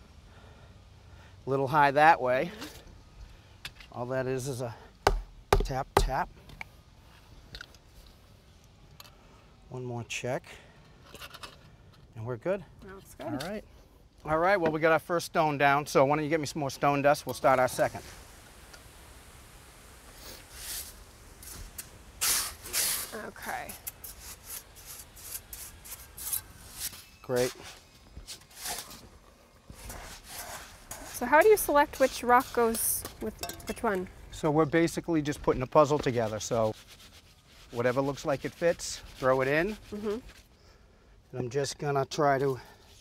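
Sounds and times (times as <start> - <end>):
shovel scraping wet stone dust: 20.4 - 27.7, 29.8 - 33.9.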